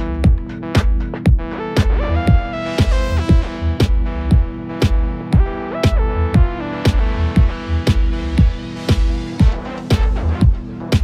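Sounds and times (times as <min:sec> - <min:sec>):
deep house music: 0:00.0 - 0:11.0.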